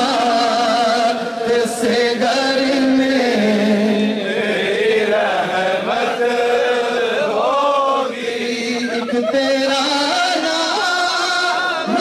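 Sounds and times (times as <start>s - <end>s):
man chanting devotional song: 0.0s - 12.0s.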